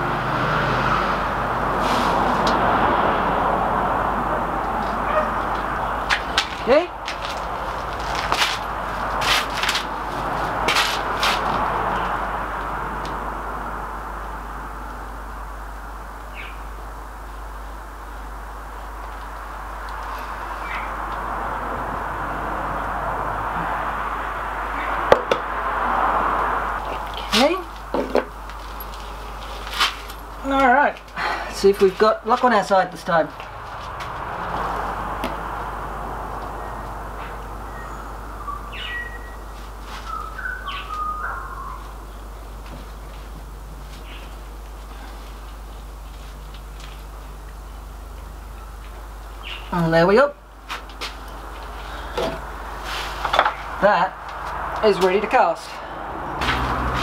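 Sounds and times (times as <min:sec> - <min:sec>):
steady rushing background noise: 0:00.0 - 0:57.0.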